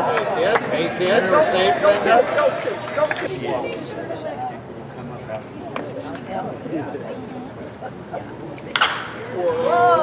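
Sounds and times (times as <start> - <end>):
murmur of spectators' voices: 0.0 - 10.0.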